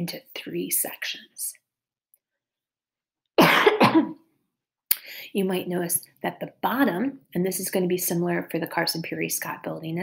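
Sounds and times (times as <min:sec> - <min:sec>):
woman coughing: 0:03.4 - 0:04.2.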